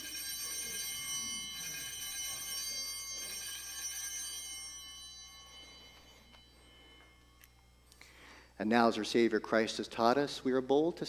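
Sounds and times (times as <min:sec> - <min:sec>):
altar bells ringing: 0:00.0 - 0:09.9.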